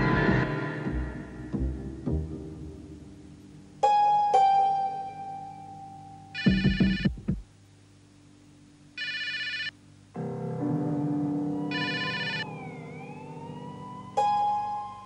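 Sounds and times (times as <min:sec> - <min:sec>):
low synthesizer chord: 0:00.0 - 0:03.9, 0:10.2 - 0:15.0
telephone ringing: 0:06.4 - 0:07.2, 0:09.0 - 0:09.8, 0:11.7 - 0:13.0
gliding tone: 0:10.6 - 0:15.0.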